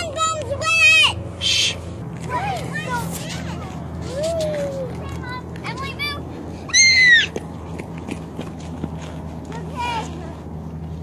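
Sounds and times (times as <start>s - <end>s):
voices of people playing: 0.0s - 11.0s
drawn-out call: 1.4s - 1.8s.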